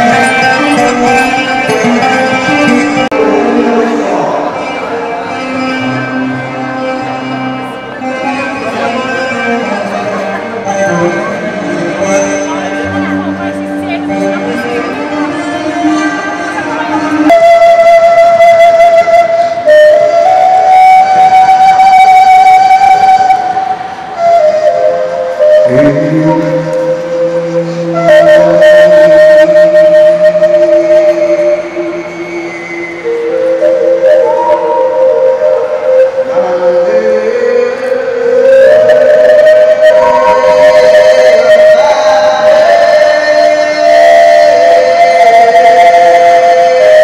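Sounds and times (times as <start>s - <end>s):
person singing into microphone: 0.0s - 6.0s, 25.5s - 47.0s
flute-like melody over pa: 0.0s - 47.0s.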